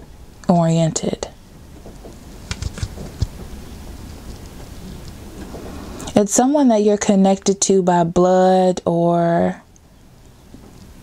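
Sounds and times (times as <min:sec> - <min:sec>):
even hiss with low rumble: 0:00.0 - 0:11.0.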